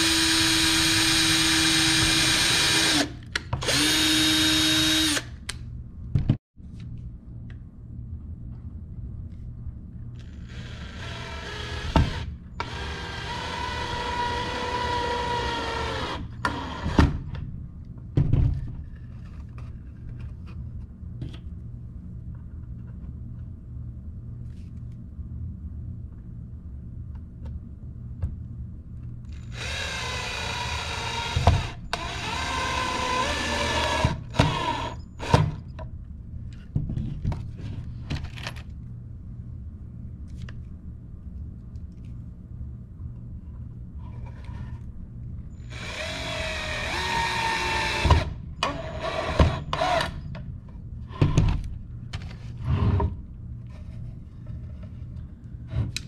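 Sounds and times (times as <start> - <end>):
cordless drill drilling into wood: 29.5 - 35.4, 45.6 - 50.2.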